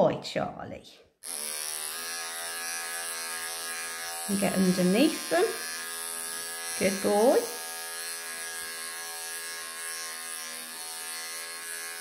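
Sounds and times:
electric hair clippers buzzing: 1.2s - 12.0s.

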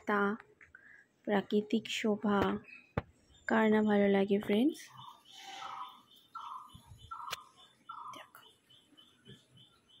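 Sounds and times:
faint high chirping: 2.5s - 10.0s
bird calls: 4.8s - 10.0s.

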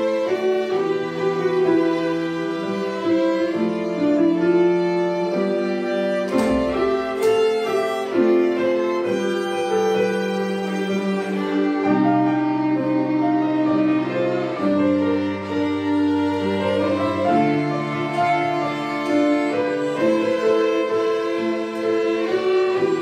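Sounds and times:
string ensemble playing: 0.0s - 23.0s.

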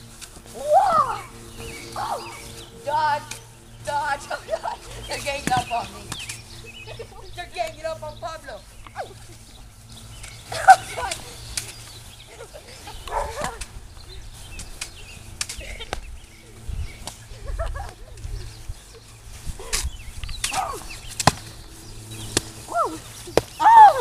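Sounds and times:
children shouting: 0.5s - 2.5s, 23.6s - 24.0s.

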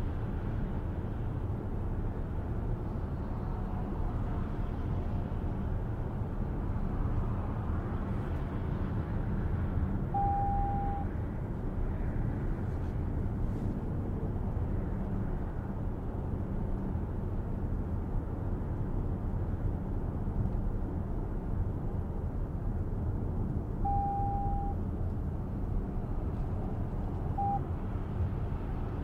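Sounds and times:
road and tyre rumble in car cabin: 0.0s - 29.0s
electronic beep: 10.2s - 11.1s, 23.9s - 24.8s, 27.4s - 27.6s.

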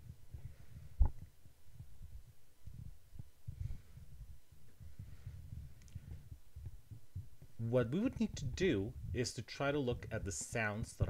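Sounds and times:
faint low thuds and rumble: 0.0s - 11.0s.

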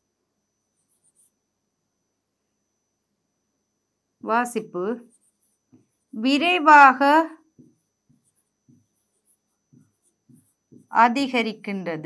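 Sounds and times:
woman speaking: 4.2s - 5.0s, 6.2s - 7.4s, 10.9s - 12.0s
pen writing on a board: 5.0s - 6.1s, 7.5s - 11.0s.

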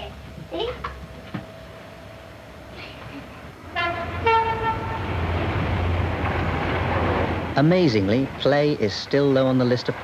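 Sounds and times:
train rumbling past: 0.0s - 10.0s
two-tone train horn: 3.6s - 5.3s.

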